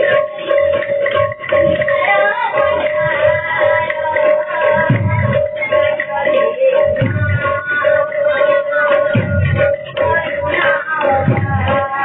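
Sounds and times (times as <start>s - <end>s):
drum beating: 0.0s - 12.0s
light ringing percussion: 0.0s - 12.0s.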